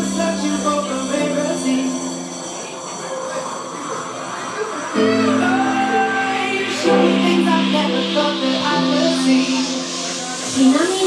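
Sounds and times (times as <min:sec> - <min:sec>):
hissy noise sweep: 0:00.0 - 0:11.0.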